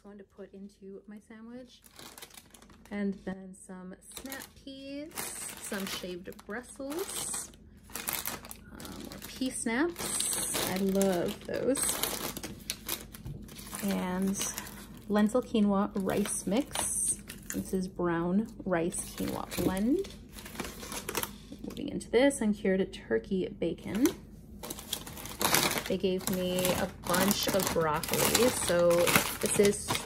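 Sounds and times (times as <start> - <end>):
plastic bags crinkling: 1.7 - 3.3, 4.1 - 17.9, 18.9 - 21.6, 23.9 - 30.0.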